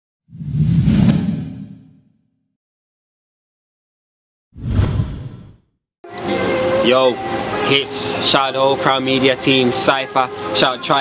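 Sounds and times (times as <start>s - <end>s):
whoosh: 0.3s - 2.2s, 4.6s - 5.6s.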